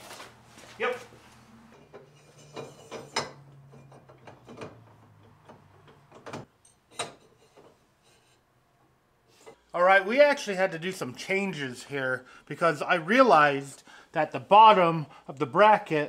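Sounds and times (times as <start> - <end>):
metal clicks and knocks: 1.7 - 7.8.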